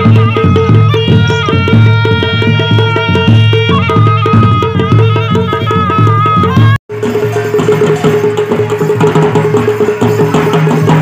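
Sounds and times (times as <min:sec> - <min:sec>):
fast drum strokes: 0:00.0 - 0:11.0.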